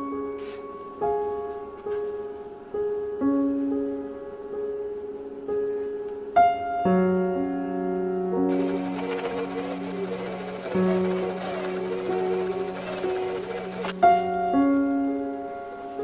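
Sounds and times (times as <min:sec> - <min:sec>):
gentle piano music: 0:00.0 - 0:16.0
sewing machine stitching: 0:08.5 - 0:14.0.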